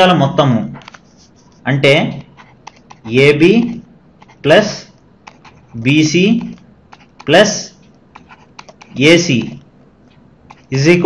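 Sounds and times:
person speaking: 0.0s - 11.0s
stylus tapping on tablet: 6.3s - 10.8s.

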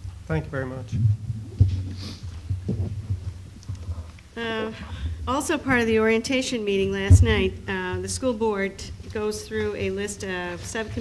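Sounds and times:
low throbbing hum: 0.0s - 6.1s
soft low thumps: 0.0s - 10.4s.

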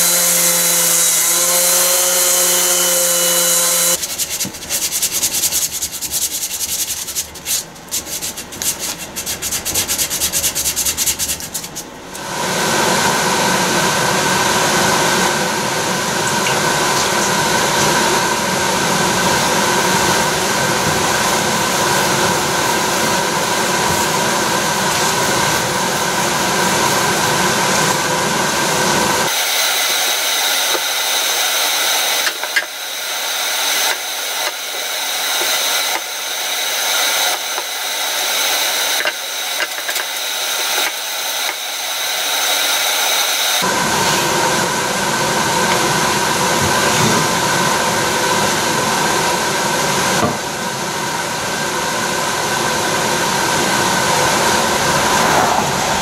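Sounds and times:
power tool sanding wood: 0.0s - 7.4s, 19.9s - 44.4s.

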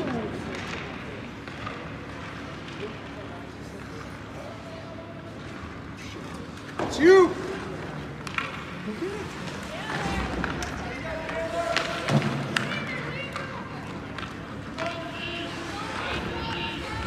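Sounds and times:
hockey sticks and puck clacking: 0.0s - 4.4s, 6.4s - 17.0s
distant shouts and voices: 4.0s - 7.8s, 8.9s - 17.0s.

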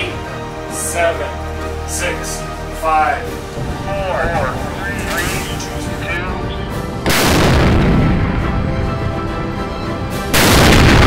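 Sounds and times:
cannon shots with rolling rumble: 7.0s - 8.8s, 10.3s - 11.0s.

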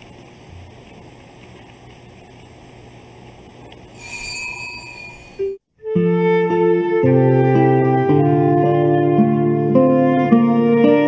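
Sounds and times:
high-pitched squeal: 4.0s - 5.6s.

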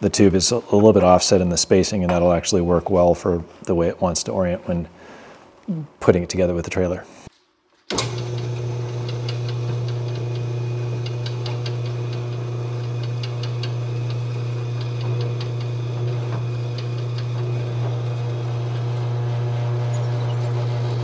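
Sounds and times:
drill bit cutting clicks: 7.9s - 18.9s
drill press motor humming: 7.9s - 21.0s.

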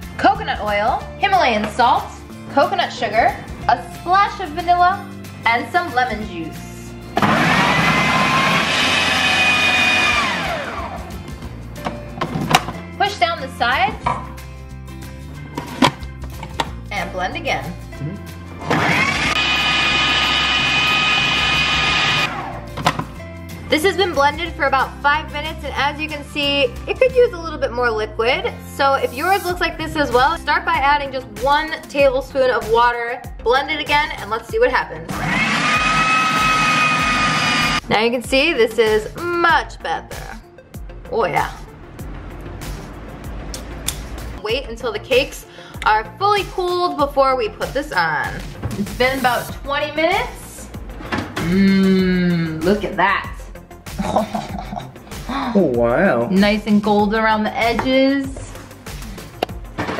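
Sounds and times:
food processor motor whining: 7.2s - 11.1s, 18.6s - 22.7s, 35.1s - 37.8s.

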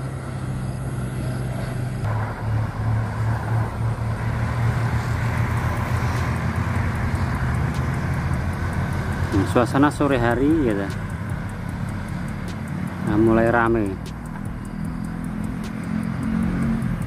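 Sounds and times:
cars driving along road: 0.0s - 17.0s.

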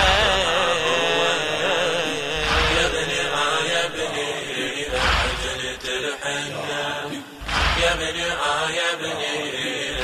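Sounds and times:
voices chanting: 0.0s - 10.0s
deep rhythmic thump: 2.1s - 6.0s, 7.4s - 8.6s.

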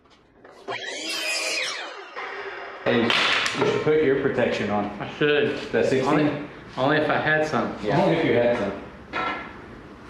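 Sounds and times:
saw winding down whine: 0.4s - 4.3s
miter saw cutting wood: 0.5s - 3.9s.

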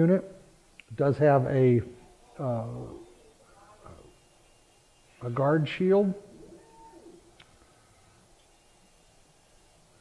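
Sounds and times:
faint machine tones: 0.0s - 10.0s.

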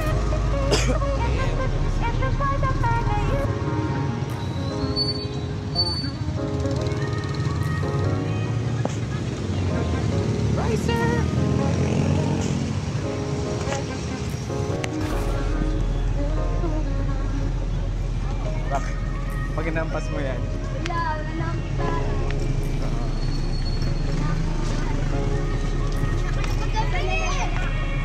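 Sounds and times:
song with singing voice: 0.0s - 4.7s
street and motorcycle traffic: 0.0s - 28.0s.

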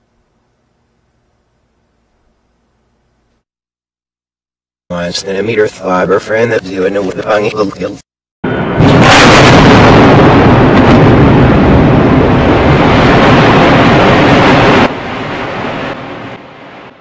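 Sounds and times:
loud explosion: 8.4s - 17.0s.

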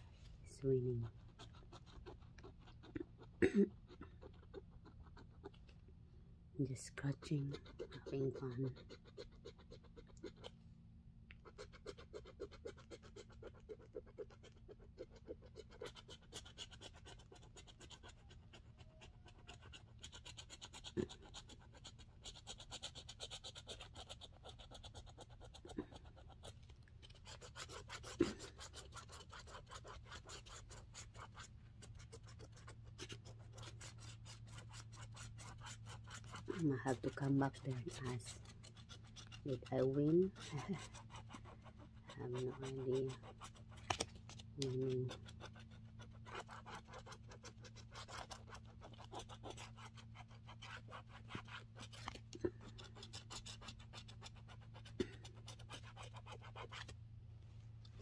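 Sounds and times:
low steady hum: 0.0s - 58.0s
scratching lottery ticket coating: 0.1s - 5.9s, 6.6s - 10.6s, 11.3s - 57.0s.

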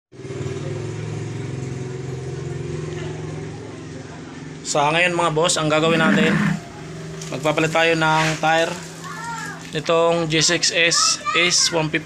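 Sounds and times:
motorcycle engine idling: 0.2s - 8.0s.

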